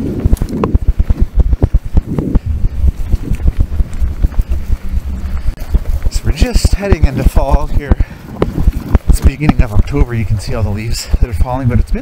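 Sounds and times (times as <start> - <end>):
tyres rolling over rocky gravel: 0.0 - 12.0.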